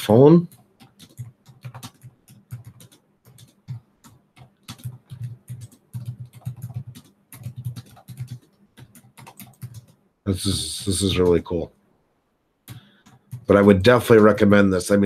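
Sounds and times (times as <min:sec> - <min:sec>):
computer keyboard typing: 0:00.5 - 0:10.0, 0:12.7 - 0:14.5.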